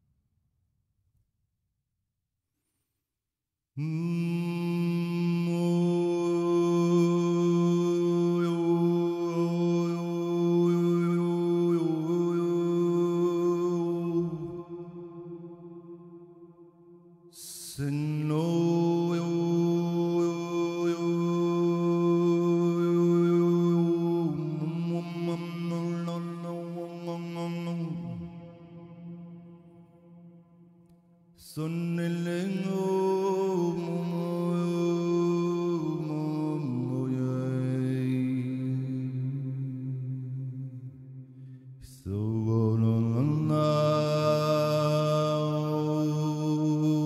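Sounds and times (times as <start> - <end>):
man chanting a low drone: 3.8 - 16.0, 17.4 - 29.3, 31.5 - 40.8, 41.9 - 47.0.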